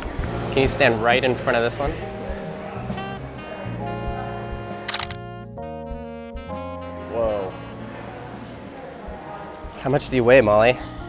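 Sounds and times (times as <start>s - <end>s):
background music: 0.0s - 11.0s
camera shutter clicks: 4.9s - 5.2s.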